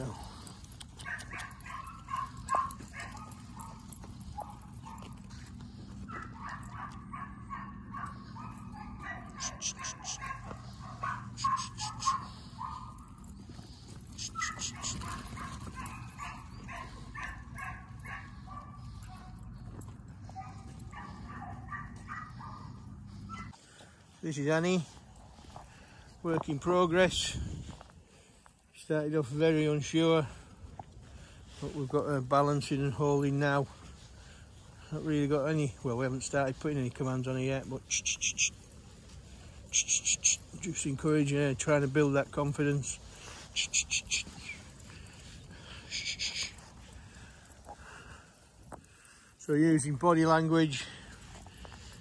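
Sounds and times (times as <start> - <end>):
dog barking and yipping: 0.0 - 23.6, 39.6 - 40.8
steady low hum: 0.1 - 23.6.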